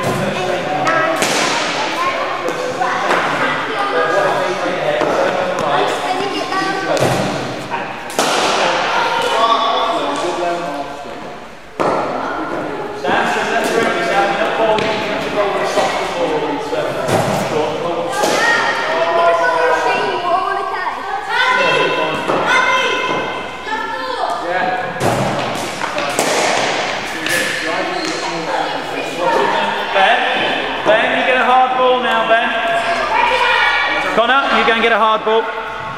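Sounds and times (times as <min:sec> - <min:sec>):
children's voices chattering: 0:00.0 - 0:35.9.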